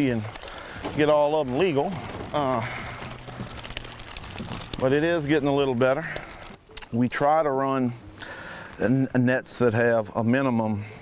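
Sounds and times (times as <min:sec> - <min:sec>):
faint rustling: 0:00.0 - 0:07.0.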